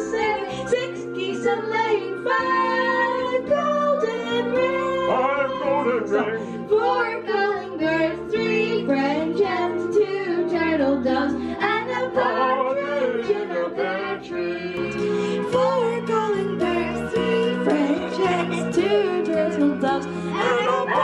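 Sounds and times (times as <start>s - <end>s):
girl singing into a microphone: 0.0s - 5.6s, 15.5s - 21.0s
instrumental backing track: 0.0s - 21.0s.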